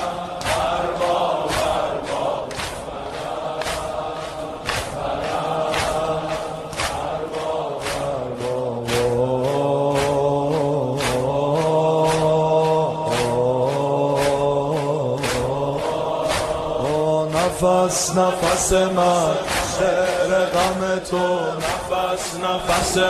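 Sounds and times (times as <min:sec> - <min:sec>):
steady beat: 0:00.0 - 0:23.0
voices chanting a lament: 0:00.0 - 0:23.0.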